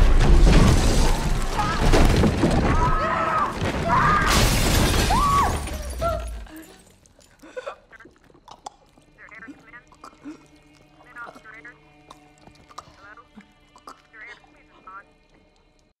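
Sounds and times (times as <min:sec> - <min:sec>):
short raspy vocal sounds: 0:07.6 - 0:15.5.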